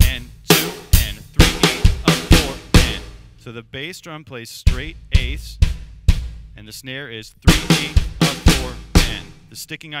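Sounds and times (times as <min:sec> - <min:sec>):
bass drum hits: 0:04.7 - 0:06.6, 0:07.5 - 0:09.4.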